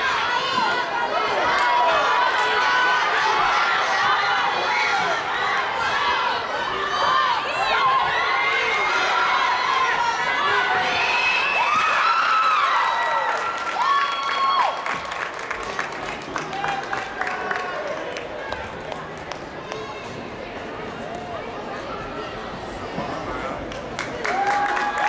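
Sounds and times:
crowd shouting and cheering: 0:00.0 - 0:25.0.

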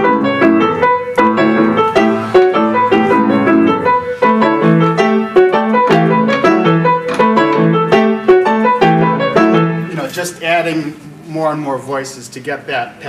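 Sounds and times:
solo piano rhythmic pattern: 0:00.0 - 0:10.2.

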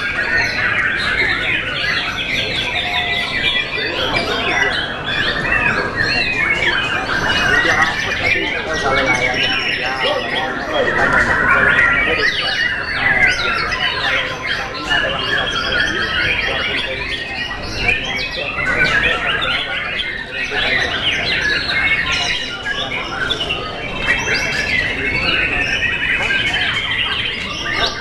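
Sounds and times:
birds singing whistles and trills: 0:00.0 - 0:28.0
human voices: 0:00.0 - 0:28.0.

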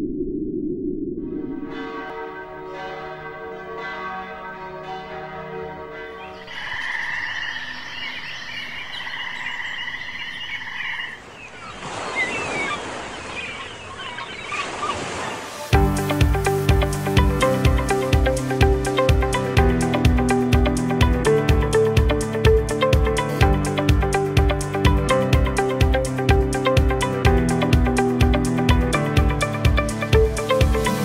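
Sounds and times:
low rumble: 0:00.0 - 0:02.0
ringing chime-like tones: 0:01.6 - 0:09.0
frogs trilling chorus: 0:06.1 - 0:11.8
rushing wash like surf: 0:11.2 - 0:19.4.

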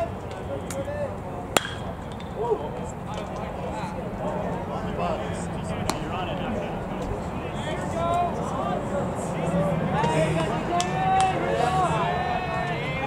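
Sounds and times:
spectators murmuring: 0:00.0 - 0:13.0
metal bat hitting ball: 0:01.6 - 0:02.3.

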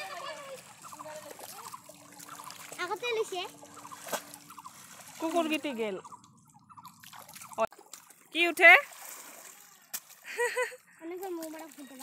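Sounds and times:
water dripping and trickling: 0:00.0 - 0:12.0.

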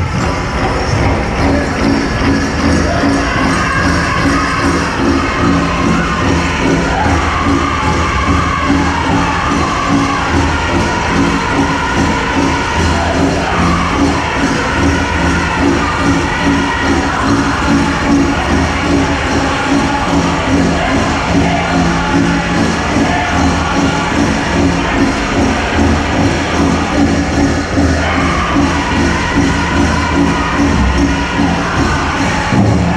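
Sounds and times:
high singing voices: 0:00.0 - 0:32.9
large drum steady beat: 0:00.0 - 0:32.9.

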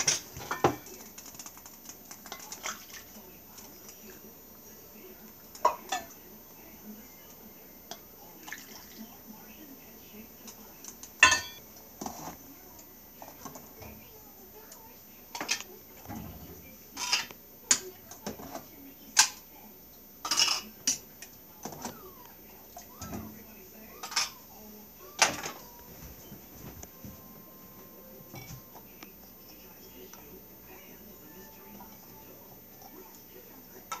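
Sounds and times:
utensils clattering: 0:00.0 - 0:03.0, 0:11.2 - 0:12.4, 0:15.3 - 0:19.4, 0:20.2 - 0:24.6, 0:25.2 - 0:27.3.

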